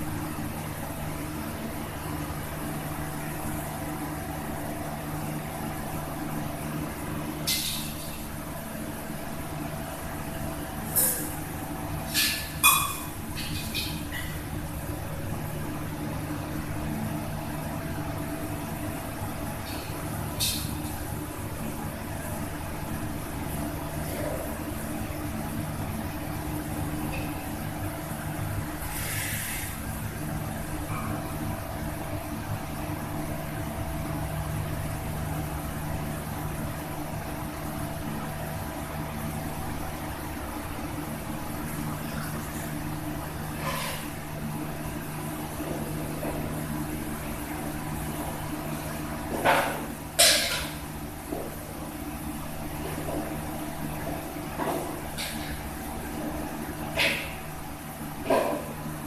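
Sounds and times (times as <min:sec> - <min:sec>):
steady mechanical hum: 0:00.0 - 0:59.0.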